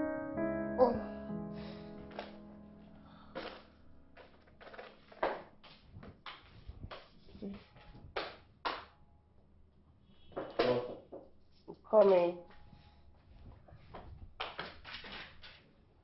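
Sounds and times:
objects tapping and knocking: 0:03.4 - 0:07.1.

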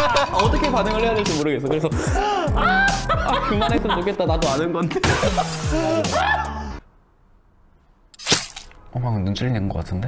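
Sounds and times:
people laughing: 0:00.0 - 0:01.0, 0:01.8 - 0:06.8.

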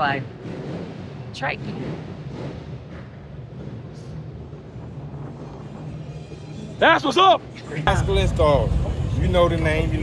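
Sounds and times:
street background noise: 0:00.0 - 0:10.0
low engine drone: 0:07.8 - 0:10.0.

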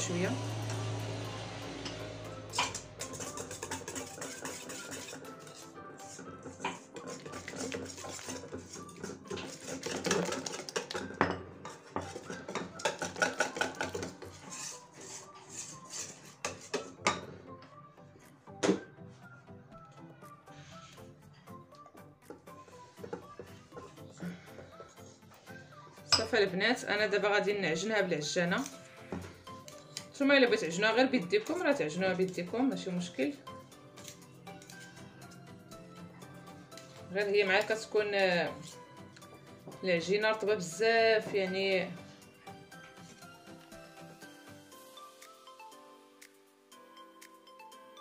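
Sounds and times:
background music: 0:00.0 - 0:48.0
whisk clinking against metal bowl: 0:02.5 - 0:17.0.

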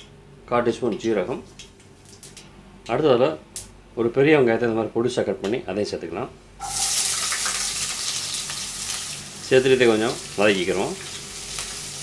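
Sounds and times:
onions sizzling in hot oil: 0:06.6 - 0:12.0.

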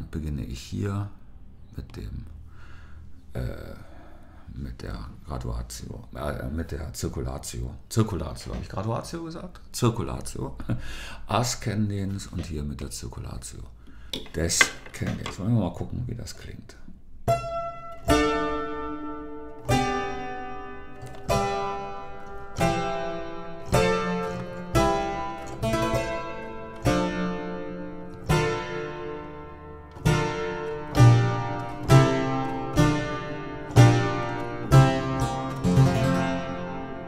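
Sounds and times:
harpsichord playing baroque music: 0:17.3 - 0:37.0.

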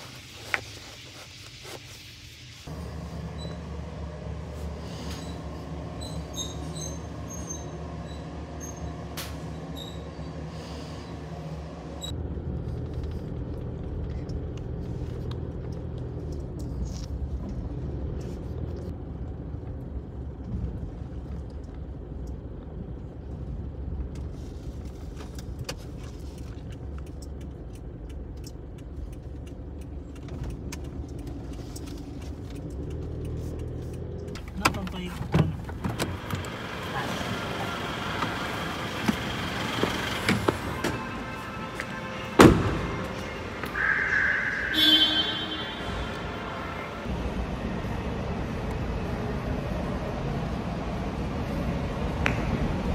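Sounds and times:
car road and engine rumble: 0:00.0 - 0:52.9.

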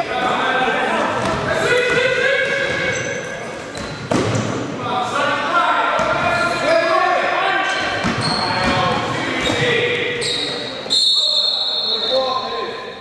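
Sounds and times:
basketball bouncing on court: 0:07.8 - 0:09.7.

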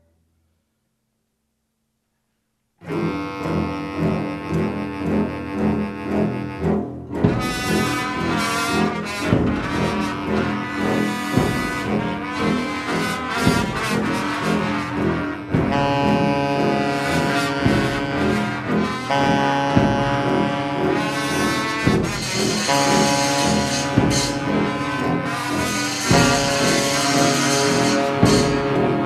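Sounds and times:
large ensemble playing chords: 0:02.8 - 0:29.0
sharp percussive accents: 0:16.6 - 0:29.0.

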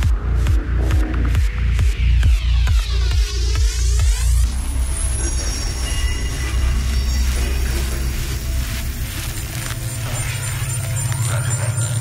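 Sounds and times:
dark psytrance music: 0:00.0 - 0:12.0.

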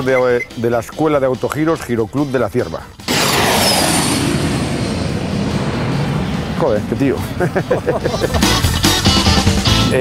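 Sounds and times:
jet engine rushing: 0:03.0 - 0:09.6.

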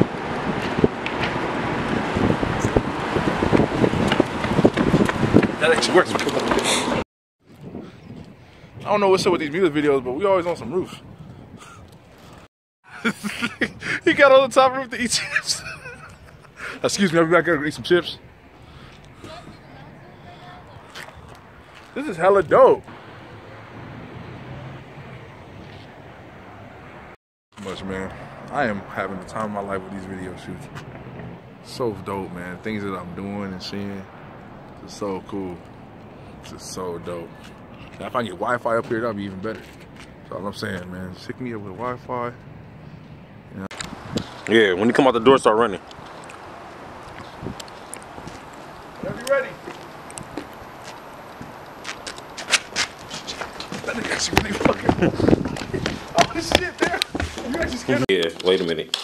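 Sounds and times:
distant city traffic hum: 0:00.0 - 0:59.0
running footsteps: 0:03.5 - 0:07.6, 0:45.9 - 0:59.0.

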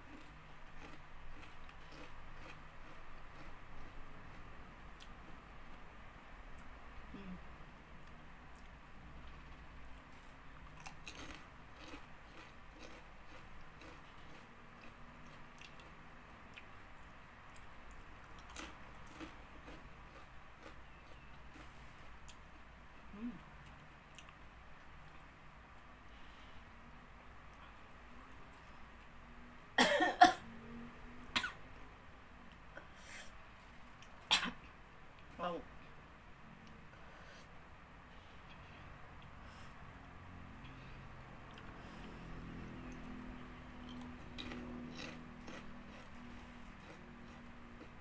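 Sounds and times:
chewing crunchy potato chips: 0:00.0 - 0:05.4, 0:08.0 - 0:22.4, 0:42.6 - 0:48.0
low room hum: 0:00.0 - 0:48.0.

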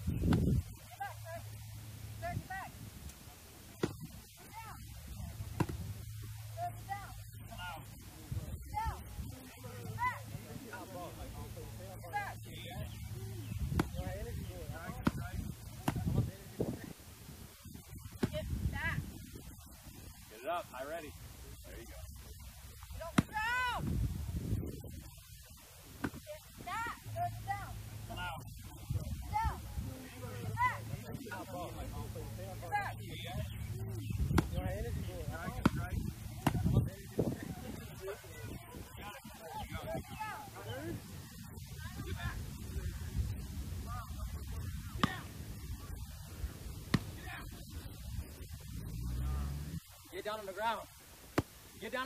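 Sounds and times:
steady low hum: 0:00.0 - 0:52.0
padded baton striking padding: 0:03.8 - 0:04.2, 0:05.5 - 0:05.9, 0:13.7 - 0:14.0, 0:34.3 - 0:34.6, 0:46.9 - 0:47.2
people shouting and yelling: 0:06.6 - 0:16.2, 0:22.8 - 0:24.0, 0:26.1 - 0:41.0, 0:43.8 - 0:46.0
people shouting and grunting: 0:08.7 - 0:11.0, 0:23.0 - 0:23.9, 0:29.0 - 0:32.0.

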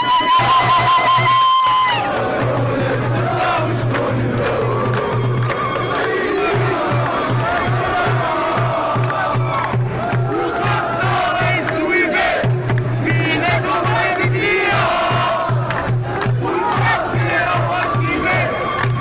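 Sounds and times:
crowd chanting slogans: 0:01.7 - 0:19.0.

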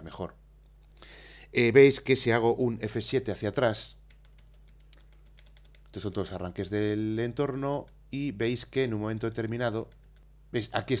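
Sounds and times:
faint keyboard keystrokes: 0:04.0 - 0:06.1, 0:09.8 - 0:10.3.

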